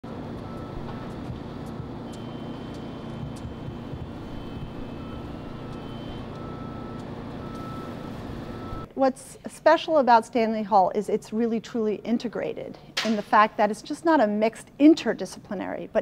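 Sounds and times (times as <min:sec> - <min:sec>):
low rumble of road traffic: 0:00.0 - 0:08.9
constant hum: 0:00.0 - 0:16.0.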